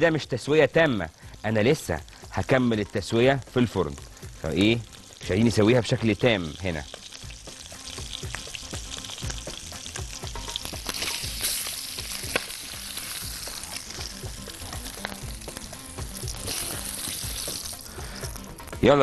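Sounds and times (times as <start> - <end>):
chicken sizzling in oil: 0.0 - 19.0.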